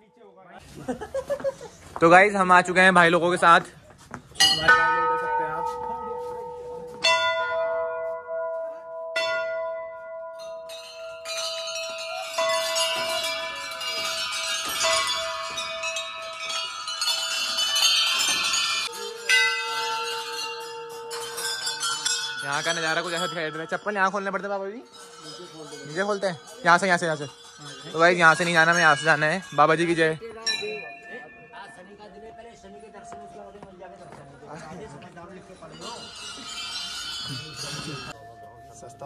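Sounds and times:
brass bells ringing: 0:04.4 - 0:39.0.

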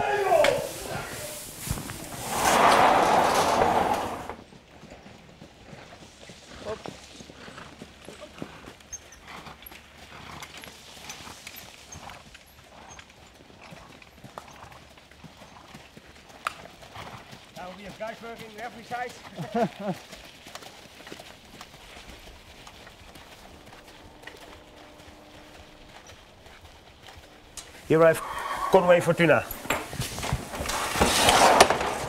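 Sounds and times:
hooves clopping on sand: 0:00.0 - 0:32.0
loud rush of noise: 0:00.3 - 0:04.4.

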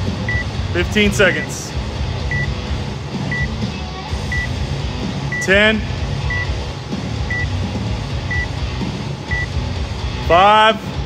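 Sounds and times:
countdown timer beeps: 0:00.3 - 0:00.5, 0:01.2 - 0:01.6, 0:02.3 - 0:02.6, 0:03.3 - 0:03.6, 0:04.3 - 0:04.6, 0:05.3 - 0:05.6, 0:06.2 - 0:06.6, 0:07.3 - 0:07.6, 0:08.3 - 0:08.5, 0:09.3 - 0:09.6.

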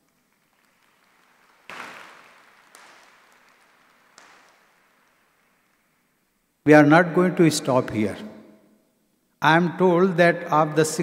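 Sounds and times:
faint audience applause: 0:00.0 - 0:06.2.

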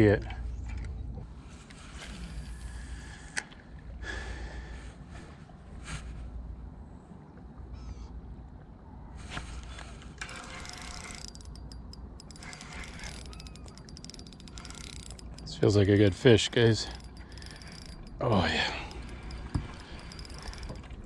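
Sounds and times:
fishing reel clicking: 0:10.2 - 0:21.0.

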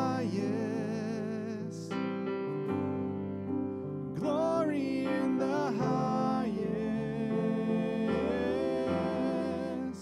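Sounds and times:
electric keyboard chords: 0:00.0 - 0:10.0.

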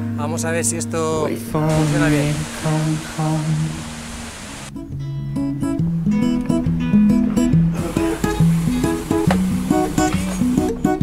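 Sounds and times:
acoustic guitar picked melody: 0:01.4 - 0:11.0
steady hiss: 0:01.7 - 0:04.7, 0:07.8 - 0:10.8.

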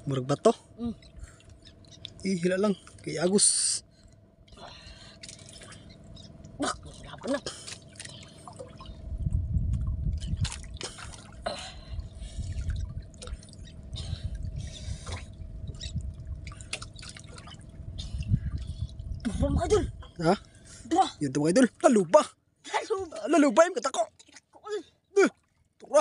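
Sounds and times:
water dripping and splashing: 0:01.4 - 0:02.3, 0:09.7 - 0:11.4, 0:12.5 - 0:14.4, 0:15.0 - 0:19.3
low rumble: 0:03.8 - 0:21.9.

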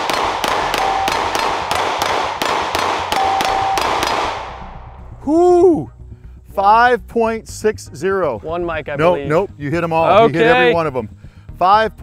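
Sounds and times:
handgun shots: 0:00.0 - 0:04.8
ringing ping of steel target: 0:00.0 - 0:05.2.

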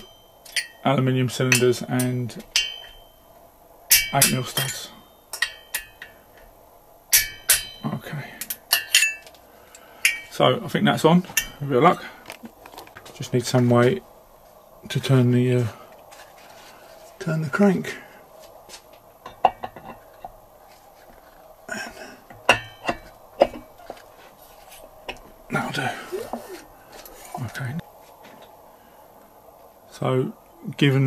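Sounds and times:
metal wrench clinking on nuts: 0:00.0 - 0:00.9, 0:08.5 - 0:09.3.

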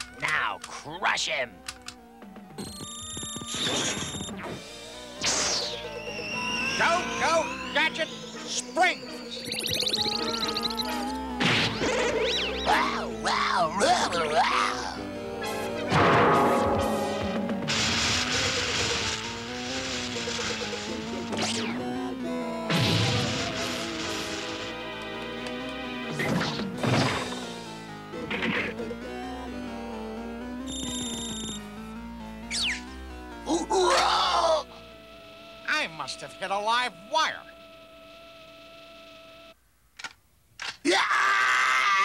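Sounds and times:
cartoon action music: 0:00.0 - 0:37.5
short electronic beep: 0:05.7 - 0:11.1, 0:30.7 - 0:31.6.

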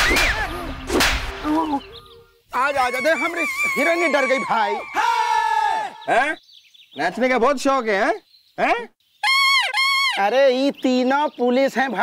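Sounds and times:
whip cracks: 0:00.0 - 0:01.6
raised voices: 0:00.0 - 0:06.4.

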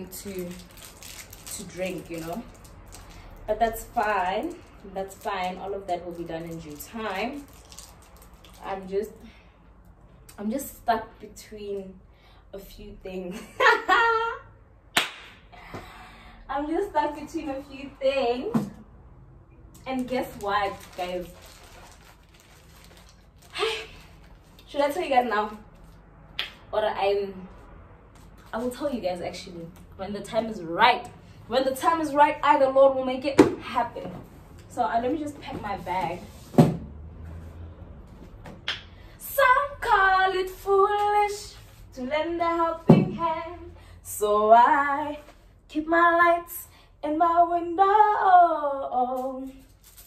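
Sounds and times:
woman laughing: 0:13.3 - 0:14.4
hand slap: 0:15.0 - 0:15.4, 0:26.4 - 0:26.6.

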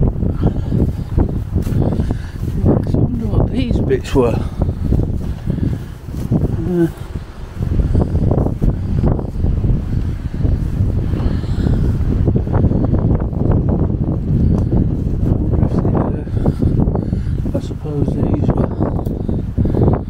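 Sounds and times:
wind buffeting microphone: 0:00.0 - 0:20.0
footsteps through long grass: 0:00.5 - 0:11.1.

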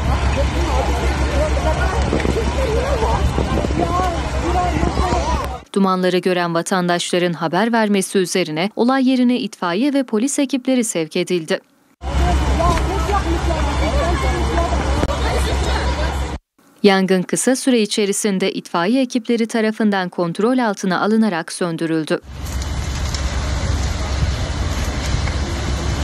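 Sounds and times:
loud continuous low rumble: 0:00.0 - 0:05.7, 0:12.0 - 0:16.4, 0:22.2 - 0:26.0
people talking over one another: 0:00.0 - 0:05.7, 0:12.0 - 0:16.4.

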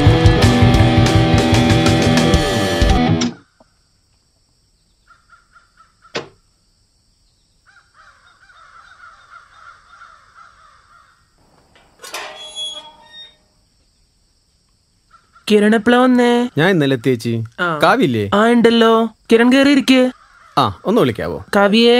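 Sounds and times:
birds calling: 0:04.7 - 0:06.6, 0:07.2 - 0:14.2, 0:14.9 - 0:18.3, 0:19.9 - 0:21.9.

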